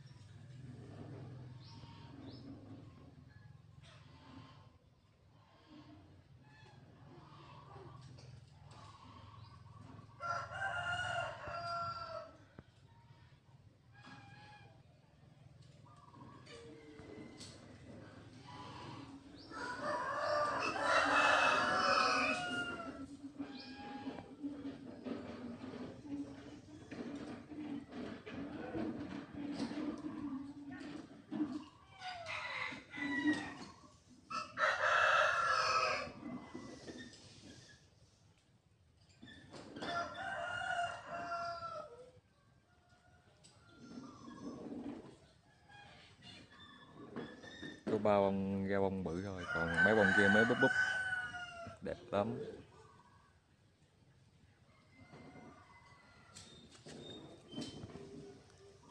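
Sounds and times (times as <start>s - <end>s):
rooster crowing: 10.2s - 12.4s, 19.5s - 23.0s, 34.3s - 36.2s, 39.9s - 42.0s, 49.4s - 51.8s.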